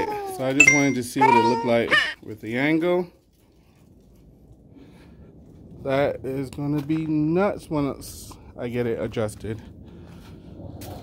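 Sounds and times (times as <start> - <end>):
faint low rumble: 0.0 - 11.0.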